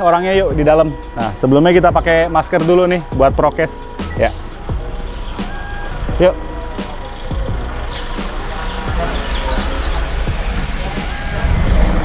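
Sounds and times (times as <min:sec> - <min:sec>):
street noise: 0:00.0 - 0:12.0
vehicle engine rumble: 0:00.0 - 0:12.0.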